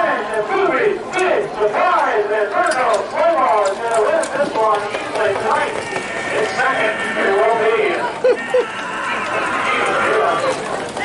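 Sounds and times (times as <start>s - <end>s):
voices talking: 0.0s - 11.0s
horse hoofbeats ticking: 2.6s - 11.0s.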